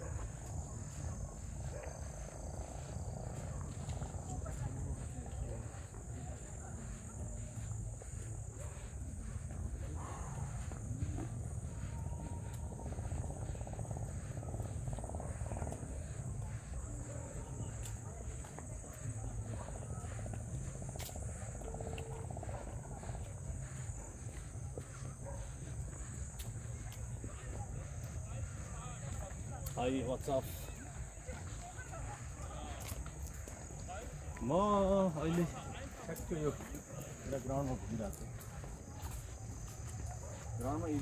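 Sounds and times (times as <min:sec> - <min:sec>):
footsteps on paved path: 0:00.0 - 0:41.0
night insects chorus: 0:00.0 - 0:41.0.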